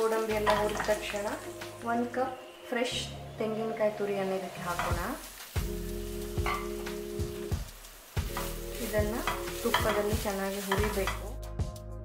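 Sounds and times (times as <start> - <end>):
coconut sizzling in a pan: 0.0 - 11.5
instrumental background music: 0.0 - 12.0
spatula knocking against pan: 6.4 - 7.0.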